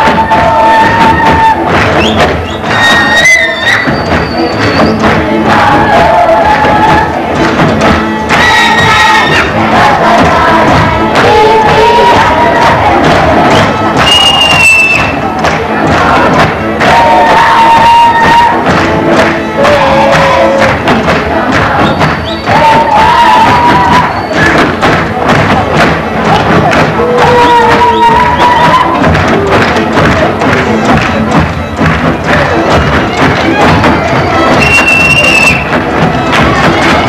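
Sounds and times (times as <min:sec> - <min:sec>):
folk dance music on violins: 0:00.0 - 0:37.0.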